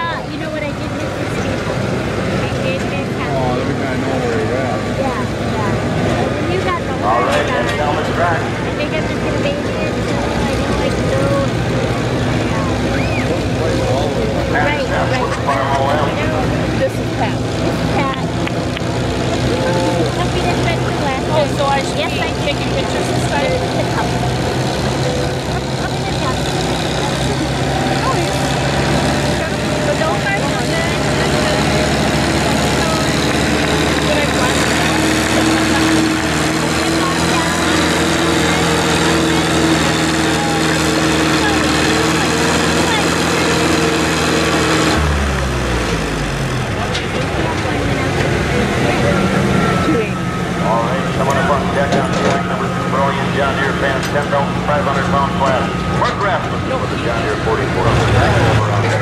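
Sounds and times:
tractor engine pulling under load: 0:00.0 - 0:59.0.

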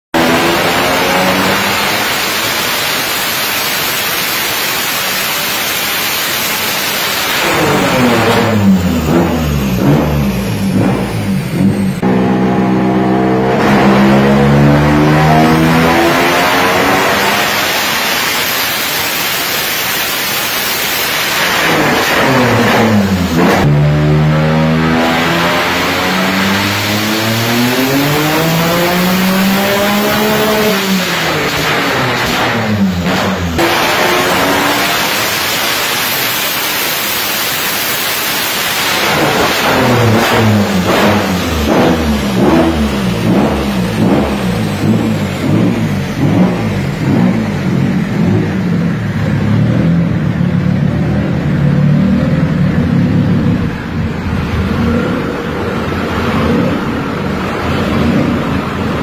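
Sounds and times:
race engine revving at full throttle: 0:00.0 - 0:59.0.

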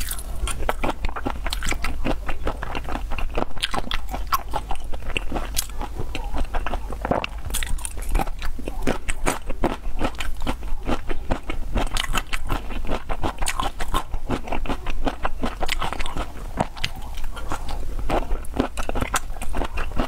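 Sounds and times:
wet biting and chewing: 0:00.0 - 0:20.0.

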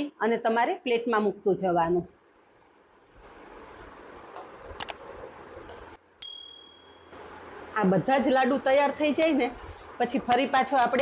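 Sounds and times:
bright bell ding: 0:06.2 - 0:07.2.

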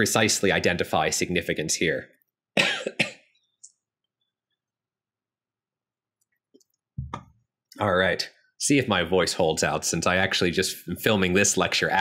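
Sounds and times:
man coughing: 0:02.6 - 0:03.3.

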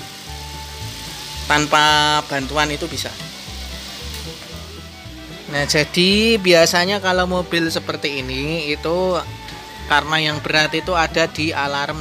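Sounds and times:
engine idling hiss: 0:00.0 - 0:06.8
faint background music with bass: 0:00.0 - 0:12.0.

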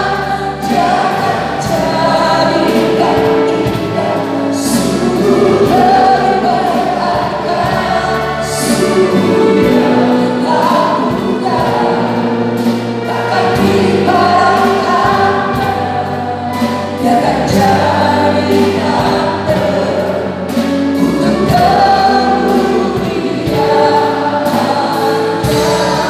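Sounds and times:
mixed vocal group singing: 0:00.0 - 0:26.0.

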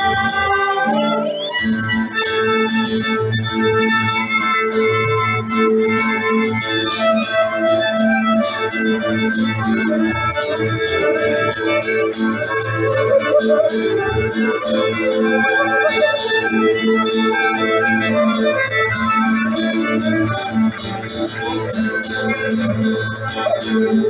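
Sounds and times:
fiddle: 0:00.0 - 0:24.0
strummed acoustic guitar: 0:00.0 - 0:24.0.

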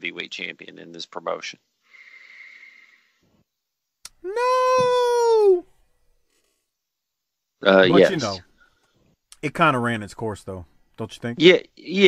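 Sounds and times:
person saying no high-pitched: 0:07.6 - 0:08.4.

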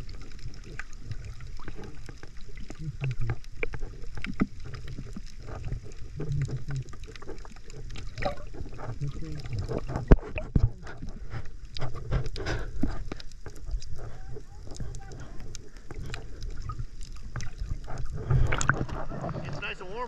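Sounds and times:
water rushing and sloshing: 0:00.0 - 0:20.0.

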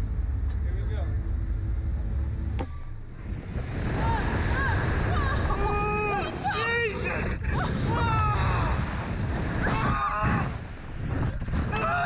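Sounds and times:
wind rumble on microphone: 0:00.0 - 0:12.0
riders screaming: 0:07.7 - 0:10.7.

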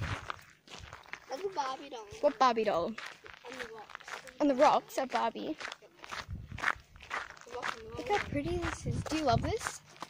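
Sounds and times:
footsteps on gravel: 0:00.0 - 0:10.0.

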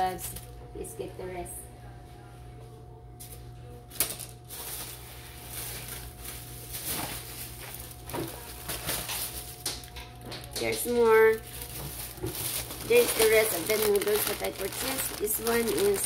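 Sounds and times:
steady low hum: 0:00.0 - 0:16.0
plastic bag rustling: 0:03.9 - 0:16.0.

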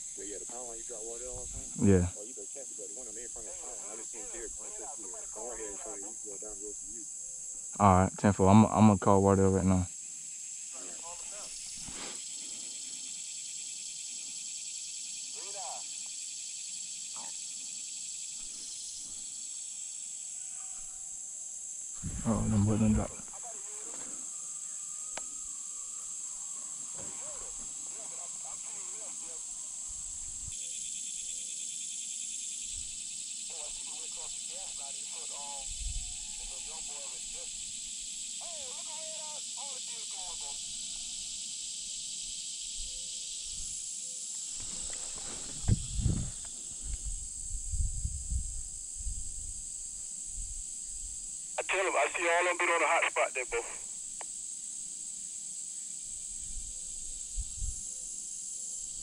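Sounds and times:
high-pitched insect drone: 0:00.0 - 0:51.6, 0:53.8 - 0:59.0
rustling: 0:44.5 - 0:47.0.

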